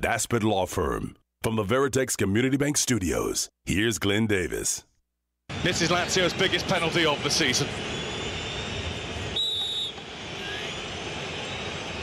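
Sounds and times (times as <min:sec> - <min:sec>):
stadium crowd noise: 0:05.5 - 0:12.0
referee's whistle blast: 0:09.3 - 0:10.8.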